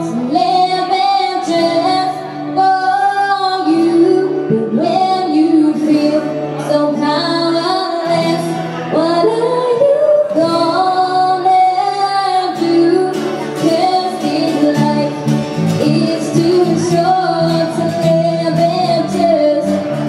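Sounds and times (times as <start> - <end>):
small acoustic band: 0.0 - 20.0
woman singing slow melody: 0.0 - 20.0.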